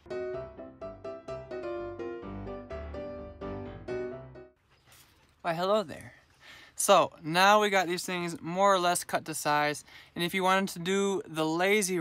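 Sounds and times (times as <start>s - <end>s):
light keyboard tune: 0.0s - 4.6s.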